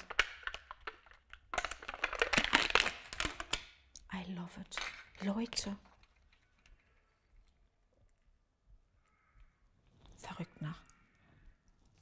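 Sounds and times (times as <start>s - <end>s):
plastic lid peeling and crinkling: 0.0s - 7.6s.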